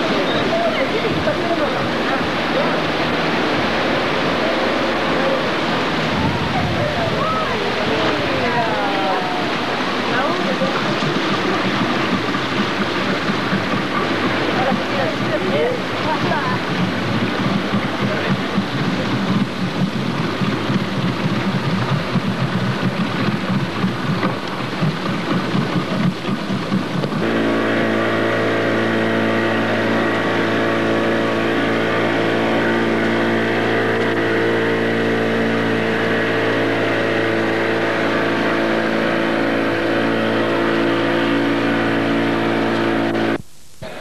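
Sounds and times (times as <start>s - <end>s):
boat engine running: 0.0s - 44.0s.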